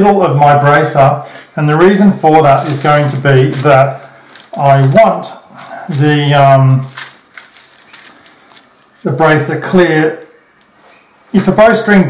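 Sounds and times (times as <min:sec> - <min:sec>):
paper rustling: 0:02.2 - 0:09.1.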